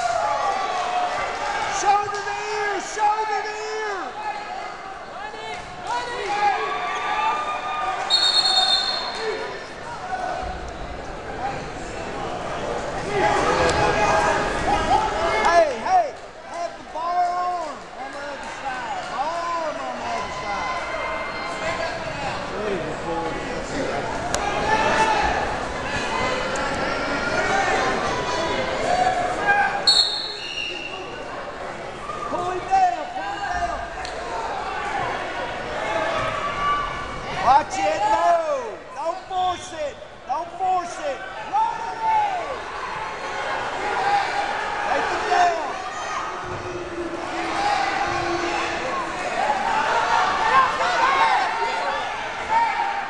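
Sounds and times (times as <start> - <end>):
crowd voices: 0.0 - 53.0
referee's whistle: 8.1 - 9.2, 29.8 - 31.1.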